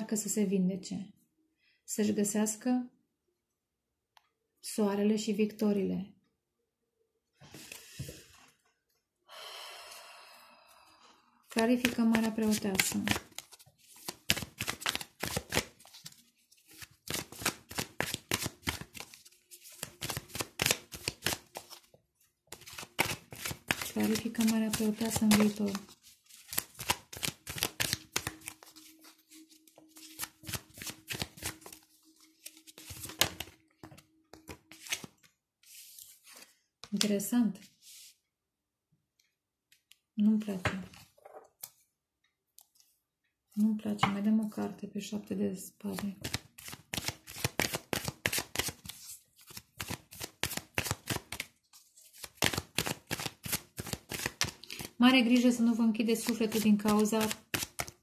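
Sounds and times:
cards being shuffled by hand: 0:11.6 - 0:37.2, 0:45.9 - 0:58.0.

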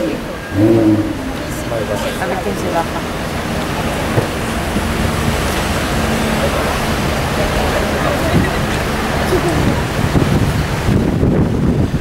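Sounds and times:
car engine idling hum: 0:00.0 - 0:10.1
street noise: 0:00.0 - 0:12.0
wind rumble on microphone: 0:03.0 - 0:12.0.

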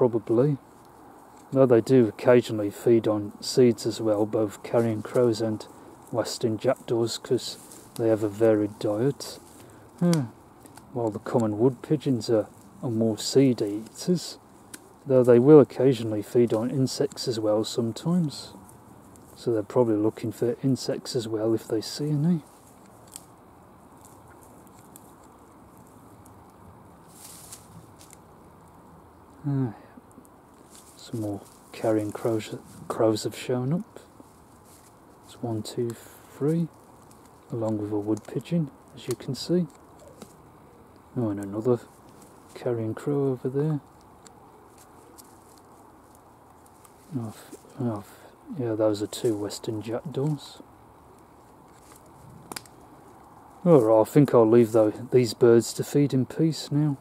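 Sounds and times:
faint background hiss: 0:00.0 - 0:57.0
faint outdoor background noise: 0:00.0 - 0:57.0
short rustle: 0:02.8 - 0:28.8, 0:30.5 - 0:55.7.

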